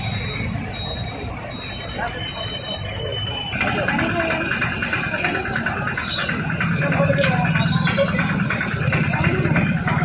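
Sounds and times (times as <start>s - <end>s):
close engine pulsing: 0.0s - 10.0s
vehicle engines idling: 0.0s - 10.0s
indistinct voices: 0.2s - 10.0s.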